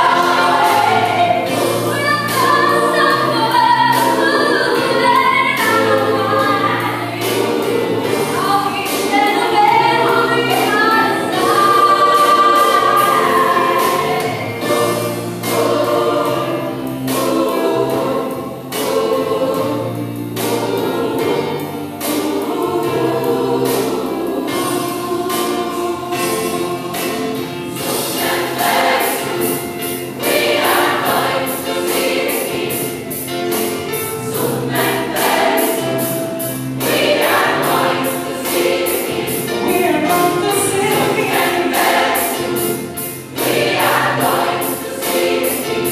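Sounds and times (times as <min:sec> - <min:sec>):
gospel choir singing: 0:00.0 - 0:45.9
sharp regular beats: 0:00.0 - 0:45.9.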